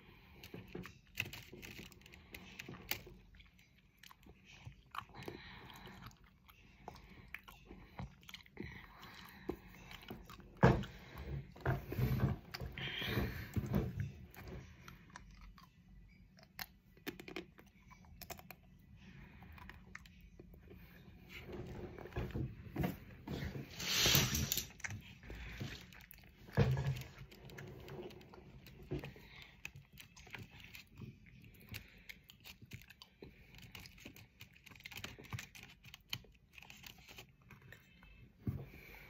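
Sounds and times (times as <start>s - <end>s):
person chewing chocolate: 0.0s - 22.5s, 24.6s - 39.0s.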